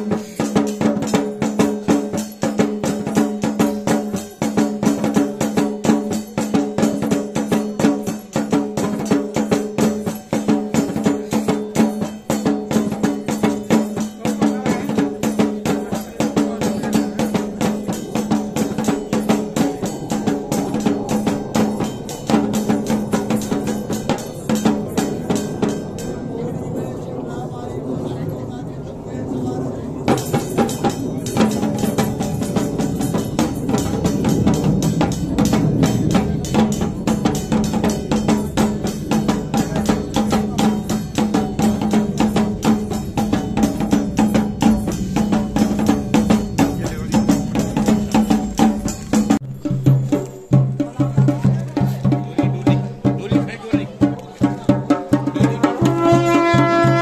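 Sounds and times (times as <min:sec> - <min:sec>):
fast drumming: 0:00.0 - 0:26.2, 0:30.1 - 0:57.0.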